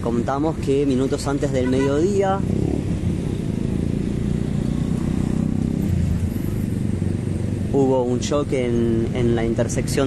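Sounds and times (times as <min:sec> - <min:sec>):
vehicle engines in slow traffic: 0:00.0 - 0:10.0.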